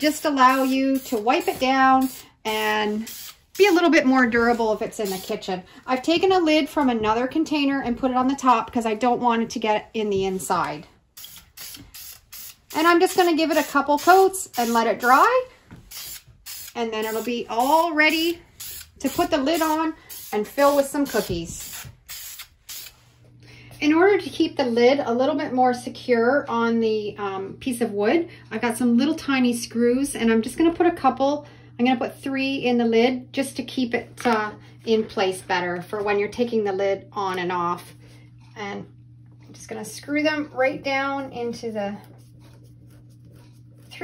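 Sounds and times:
aerosol can spraying: 0.0 - 5.4, 11.2 - 23.0
low steady hum: 0.0 - 44.0.

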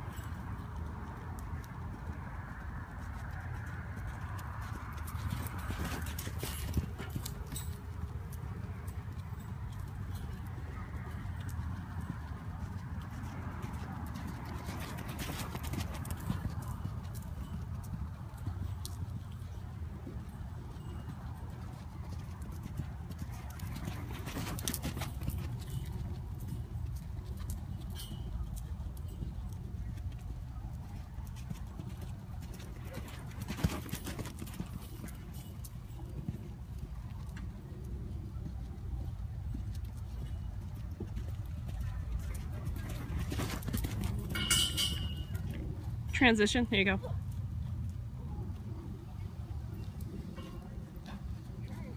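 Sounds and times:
hooves cantering on soft dirt: 0.0 - 51.9.

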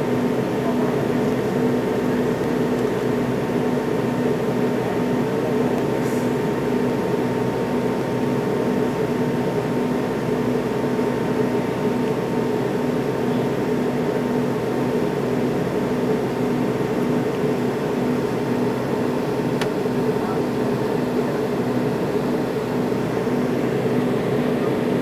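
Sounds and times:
airliner cabin engine roar: 0.0 - 25.0.

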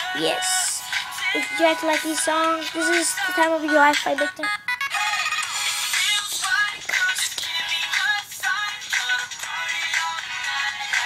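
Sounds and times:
pop song with singing: 0.0 - 11.0.

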